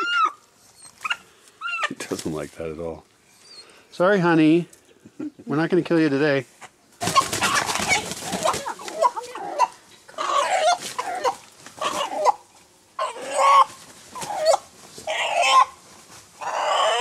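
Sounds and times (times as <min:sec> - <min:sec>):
rooster squawking in distress: 0:07.0 - 0:12.4, 0:13.0 - 0:15.8, 0:16.4 - 0:17.0.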